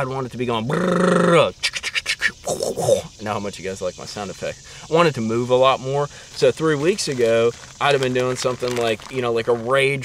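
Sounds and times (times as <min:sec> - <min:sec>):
man making mouth sound effects: 0:00.6 - 0:03.1.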